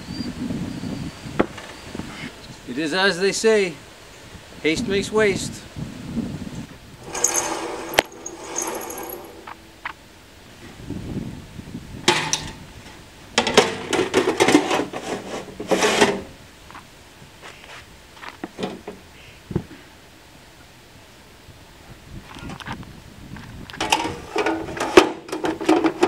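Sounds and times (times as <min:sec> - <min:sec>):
metal clattering and scraping: 0:07.0 - 0:09.9, 0:23.8 - 0:26.0.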